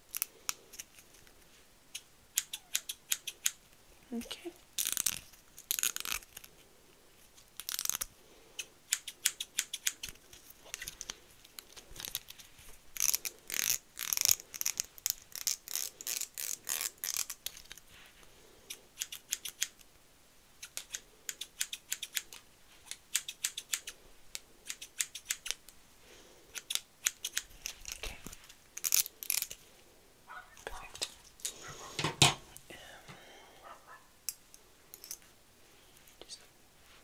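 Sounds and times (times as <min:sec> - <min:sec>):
scissors snipping: 0:01.9 - 0:03.6.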